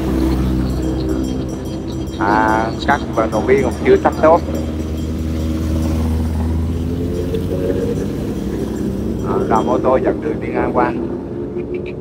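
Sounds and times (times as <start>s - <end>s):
motorcycles riding past: 0.0s - 12.0s.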